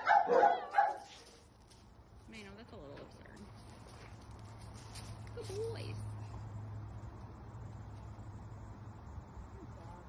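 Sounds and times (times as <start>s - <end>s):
dog barking: 0.0s - 1.2s.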